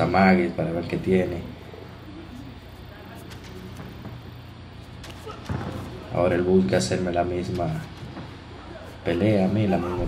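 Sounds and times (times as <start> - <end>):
low steady background noise: 0.0 - 10.0
soft thuds and slaps: 5.0 - 6.0.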